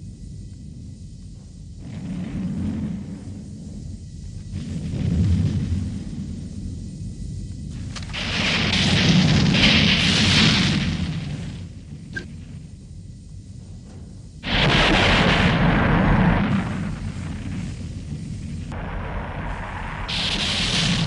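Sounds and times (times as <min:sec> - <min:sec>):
low rumbling booms: 0:00.0 - 0:21.0.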